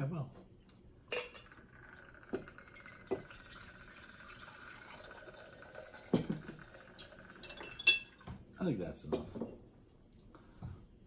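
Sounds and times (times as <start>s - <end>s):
liquid pouring into metal shaker: 1.3s - 8.2s.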